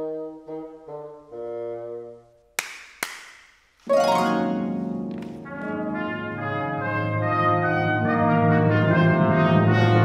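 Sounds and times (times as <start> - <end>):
brass chord: 3.9 - 10.0
full orchestra playing: 3.9 - 10.0.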